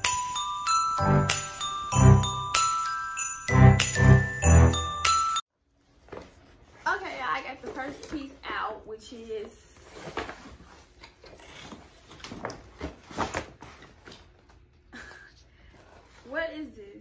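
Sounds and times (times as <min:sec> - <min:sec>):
woman speaking: 0:06.8 - 0:09.8, 0:16.2 - 0:17.0.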